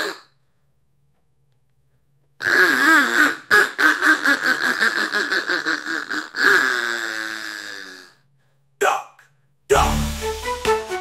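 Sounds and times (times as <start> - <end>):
synthesized duck quacking: 2.4 - 7.2.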